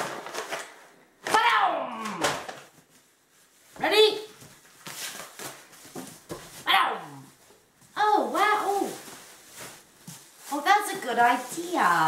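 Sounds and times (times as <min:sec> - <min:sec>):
plastic wrap crinkling and tearing: 0:02.0 - 0:12.0.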